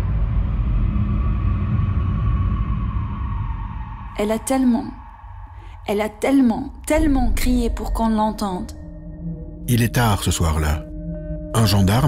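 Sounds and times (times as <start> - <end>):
deep steady rumble: 0.0 - 12.0.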